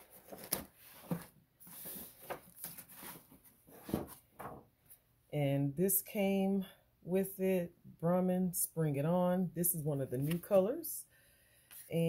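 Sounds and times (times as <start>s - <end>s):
paper wrapping rustling: 0.0s - 4.2s.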